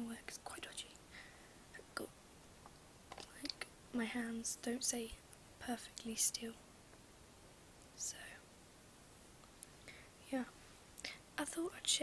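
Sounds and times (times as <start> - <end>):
woman whispering: 0.0 - 1.0, 3.2 - 6.6, 8.0 - 8.4, 10.2 - 12.0.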